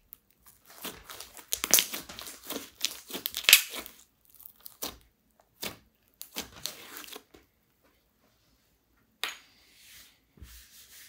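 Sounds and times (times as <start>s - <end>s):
slime squeezed with sticky crackles: 0.0s - 7.3s.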